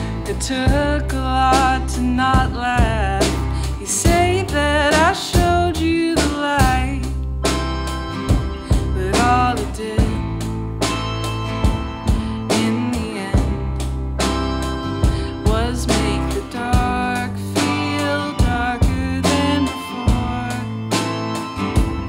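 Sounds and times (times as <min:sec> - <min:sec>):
person singing: 0:00.0 - 0:07.2, 0:08.5 - 0:10.5, 0:12.0 - 0:13.8, 0:15.0 - 0:22.0
live band playing: 0:00.0 - 0:22.0
steady drum beat: 0:00.0 - 0:22.0.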